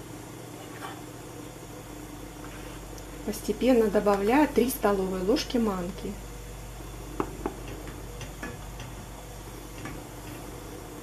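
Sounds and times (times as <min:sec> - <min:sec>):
gas burner hissing: 0:00.0 - 0:11.0.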